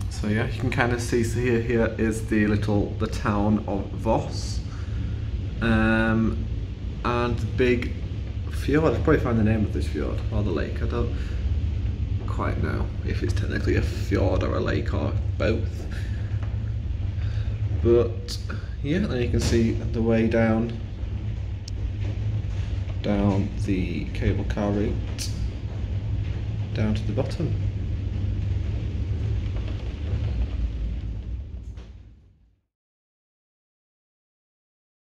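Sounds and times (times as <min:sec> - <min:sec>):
man speaking: 0:00.0 - 0:04.7, 0:05.6 - 0:06.4, 0:07.0 - 0:11.2, 0:12.2 - 0:16.2, 0:17.7 - 0:20.9, 0:23.0 - 0:25.5, 0:26.7 - 0:27.8
gondola cabin rumble: 0:00.0 - 0:32.7.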